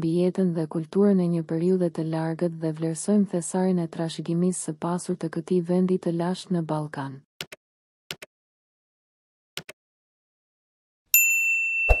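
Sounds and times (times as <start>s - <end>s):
notification bell ding: 11.2s - 12.0s.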